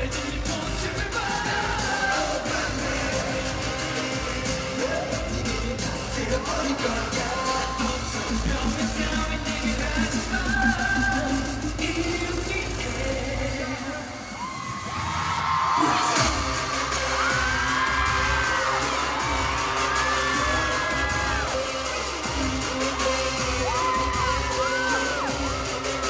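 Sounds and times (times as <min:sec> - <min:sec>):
pounding bass beat: 0:00.0 - 0:13.9, 0:15.8 - 0:26.0
loud dance music through pa: 0:00.0 - 0:26.0.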